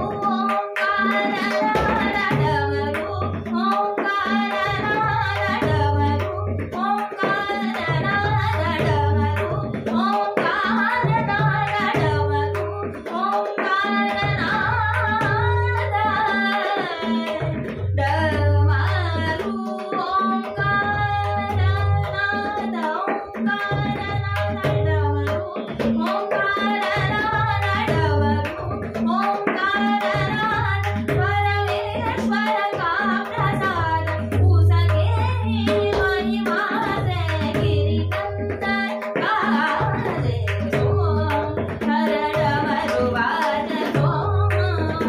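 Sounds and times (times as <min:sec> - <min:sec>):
tabla playing: 0:00.0 - 0:45.0
woman singing: 0:00.0 - 0:45.0.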